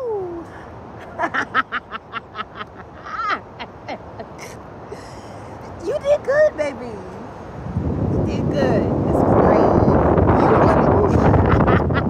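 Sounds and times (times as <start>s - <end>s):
woman laughing: 1.0s - 5.4s, 10.4s - 12.0s.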